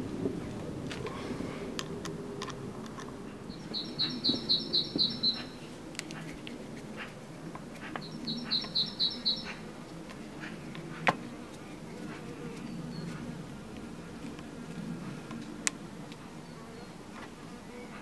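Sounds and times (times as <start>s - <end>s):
small bird chirping: 3.5s - 5.7s, 8.0s - 9.6s.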